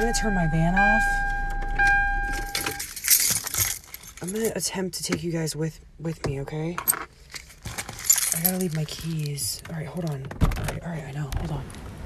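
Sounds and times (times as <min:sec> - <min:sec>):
electronic chime tone: 0:00.0 - 0:02.8
keys jangling: 0:02.3 - 0:04.6, 0:07.3 - 0:09.4.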